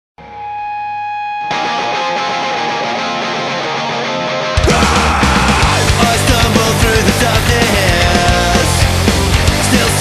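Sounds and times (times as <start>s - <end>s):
ringing electric guitar chord: 0.2s - 4.6s
punk rock electric guitar: 0.2s - 10.0s.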